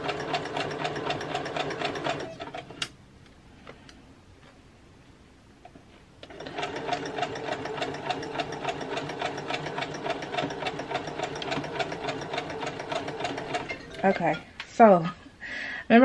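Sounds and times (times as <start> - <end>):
sewing machine stitching: 0.0 - 2.8, 6.2 - 14.4.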